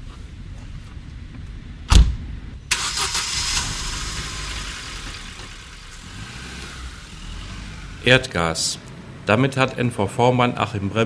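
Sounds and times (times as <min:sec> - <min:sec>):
car door slamming: 0:01.9 - 0:02.2
minivan engine starting and running: 0:02.7 - 0:09.4.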